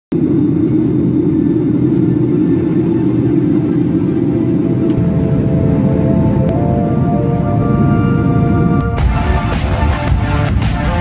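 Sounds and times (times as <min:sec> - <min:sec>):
steady low rumble: 0:00.1 - 0:11.0
held musical notes: 0:02.8 - 0:11.0.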